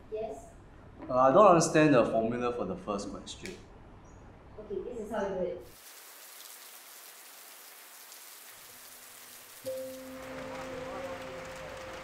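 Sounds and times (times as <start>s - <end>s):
steady rain on wet paving: 5.7s - 12.0s.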